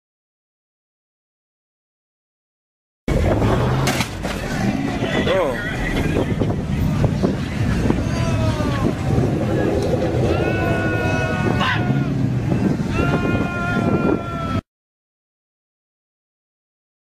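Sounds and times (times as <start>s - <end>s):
steady low rumble: 3.1s - 14.5s
people's voices: 3.1s - 14.6s.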